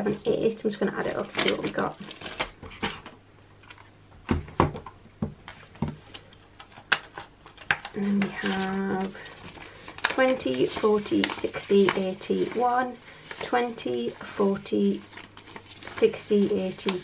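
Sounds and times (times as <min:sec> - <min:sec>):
plastic crinkling: 0:06.1 - 0:13.6.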